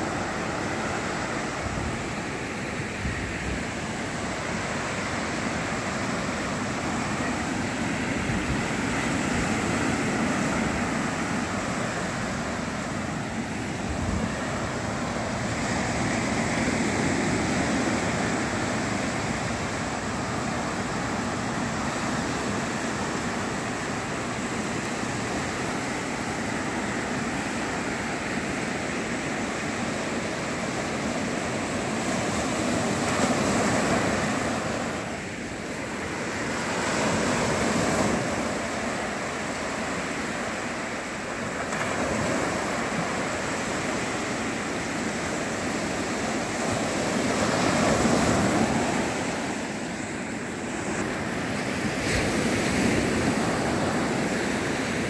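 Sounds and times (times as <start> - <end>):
waves breaking on sandy shore: 0.0 - 55.0.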